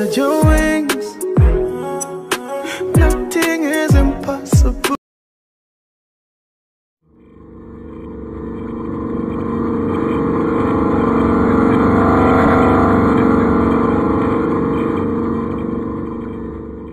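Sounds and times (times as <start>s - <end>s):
deep droning hum: 7.1s - 16.9s.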